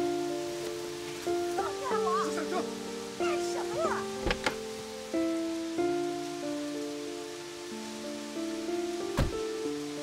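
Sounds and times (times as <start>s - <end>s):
soundtrack music with held notes: 0.0s - 10.0s
steady rain: 0.0s - 10.0s
car door shutting: 4.2s - 4.6s, 9.1s - 9.4s.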